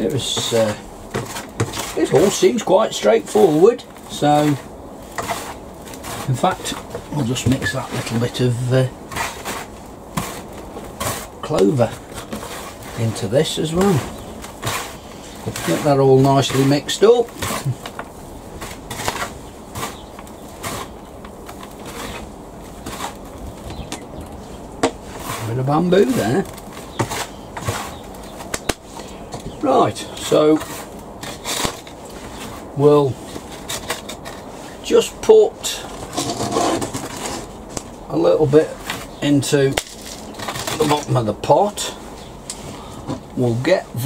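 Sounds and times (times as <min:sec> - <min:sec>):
hands rustling potting mix: 0:00.0 - 0:44.0.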